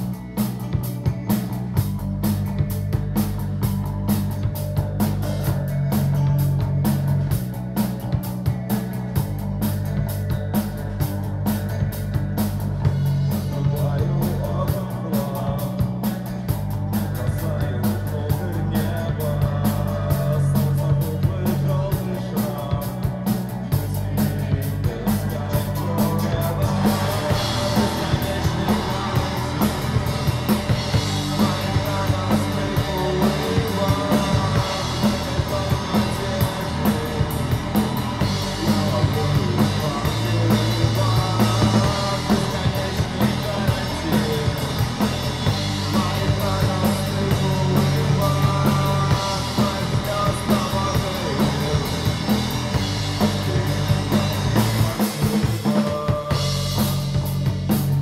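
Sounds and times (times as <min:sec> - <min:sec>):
drum kit beat: 0:00.0 - 0:58.0
electric bass: 0:00.0 - 0:58.0
electric guitar: 0:00.0 - 0:58.0.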